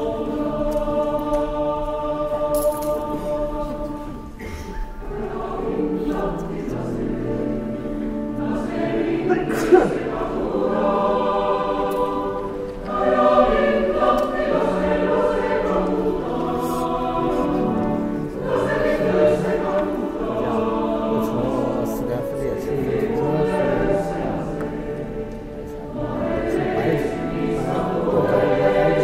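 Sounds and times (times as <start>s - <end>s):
mixed choir singing: 0.0s - 29.0s.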